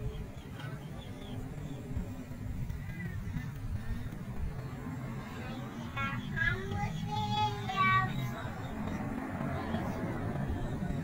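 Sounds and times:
background crowd noise: 0.0 - 11.0
traffic rumble: 0.0 - 11.0
child singing: 5.2 - 10.9.

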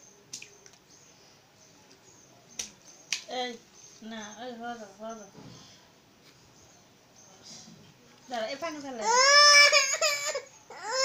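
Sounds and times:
infant crying: 9.0 - 11.0.

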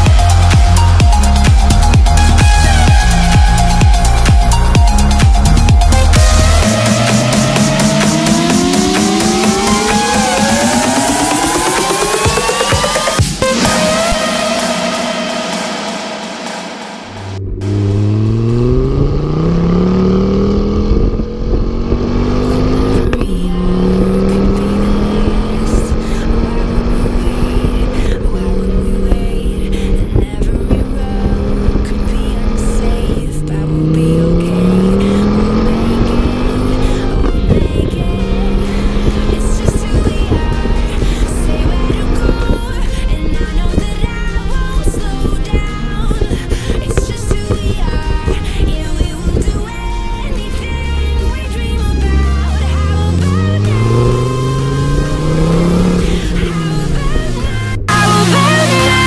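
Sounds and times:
car engine accelerating: 0.0 - 59.0
road and tyre noise: 0.0 - 59.0.

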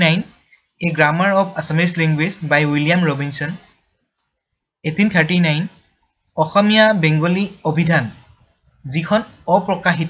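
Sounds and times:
person speaking: 0.0 - 3.6, 4.9 - 10.0.

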